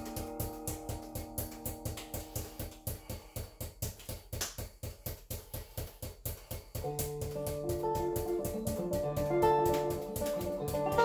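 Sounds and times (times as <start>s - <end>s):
juggling balls bouncing on floor: 0.0s - 11.0s.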